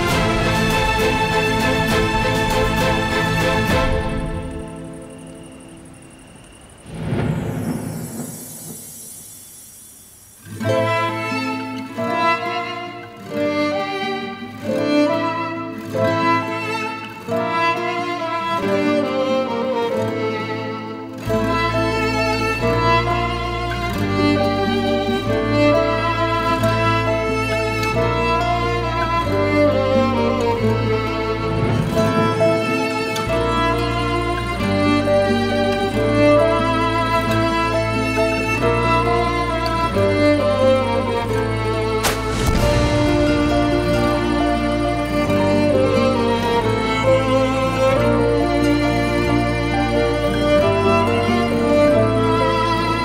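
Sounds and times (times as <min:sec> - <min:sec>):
violin melody: 0:00.0 - 0:06.5, 0:10.4 - 0:53.0
falling whoosh: 0:06.4 - 0:10.3, 0:42.0 - 0:45.7
deep rumbling boom: 0:06.8 - 0:09.3, 0:42.0 - 0:45.3
sustained low strings: 0:21.3 - 0:53.0.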